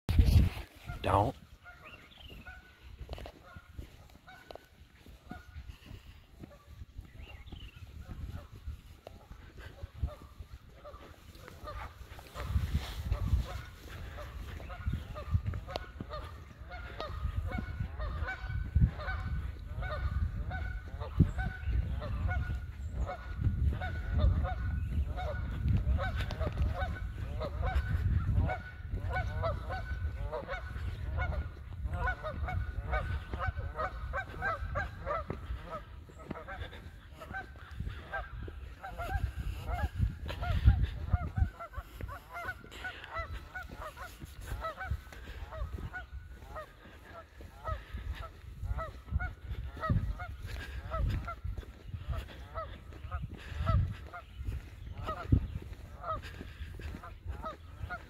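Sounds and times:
bird calls: 0.6s - 8.6s.

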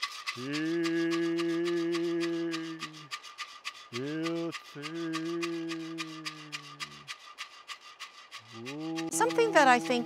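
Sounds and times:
rattle shaken rhythmically: 0.0s - 10.0s
deep chanted note: 8.5s - 9.4s.

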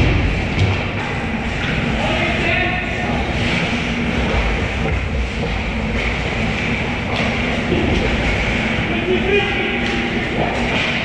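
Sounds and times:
low rumble of rink noise: 0.0s - 11.0s.

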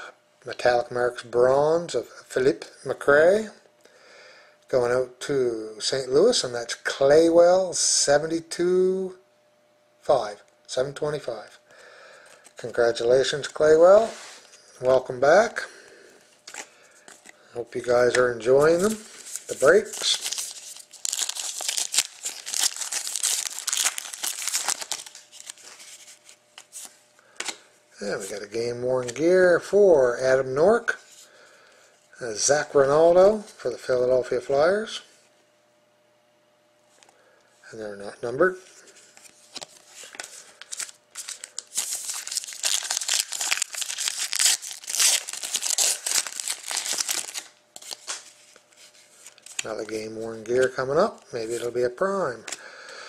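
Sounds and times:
foil wrapper tearing and crinkling: 18.6s - 26.9s, 39.4s - 48.3s.

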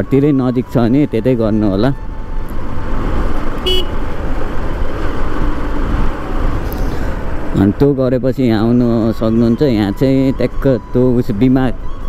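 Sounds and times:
motorcycle riding: 0.0s - 10.3s
motorcycle horn toot: 3.6s - 4.0s.

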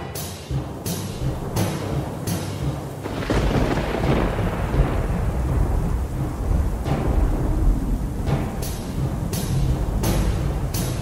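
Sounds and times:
rain hissing: 0.0s - 11.0s
thunder: 1.2s - 11.0s.

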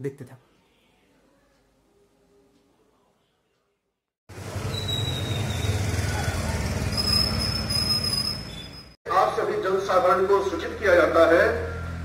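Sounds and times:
motorcycle engine passing by: 4.3s - 8.7s, 11.3s - 12.0s
street noise rumble: 4.3s - 12.0s.

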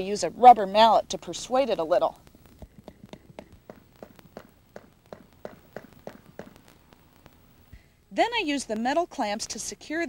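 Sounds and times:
rubber mallet tapping: 2.6s - 6.6s.

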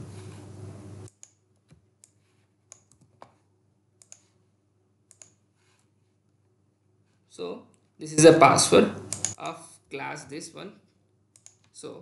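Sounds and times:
keyboard and mouse clicks: 1.0s - 3.4s, 4.0s - 4.3s, 5.1s - 5.4s, 9.1s - 9.5s, 11.3s - 11.8s.

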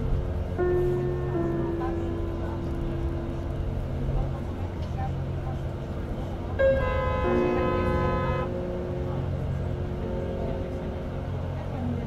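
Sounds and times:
engine rumble: 0.0s - 12.0s
road noise: 0.0s - 12.0s
vehicle horn blast: 6.6s - 8.6s.

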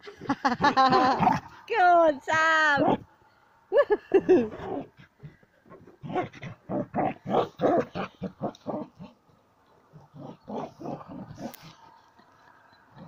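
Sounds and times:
dog growling in bursts: 4.4s - 9.2s, 9.9s - 11.8s.

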